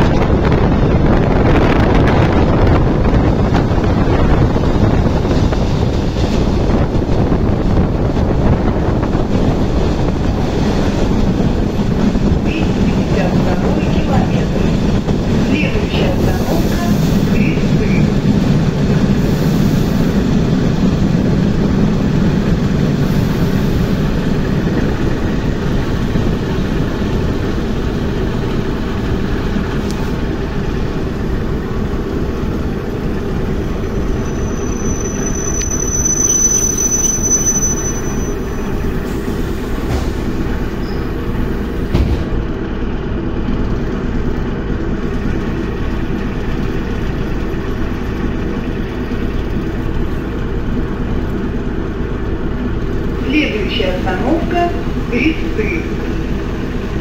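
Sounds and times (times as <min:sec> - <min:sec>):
train wheels rumbling: 0:00.0 - 0:57.0
brakes squealing: 0:33.2 - 0:41.9.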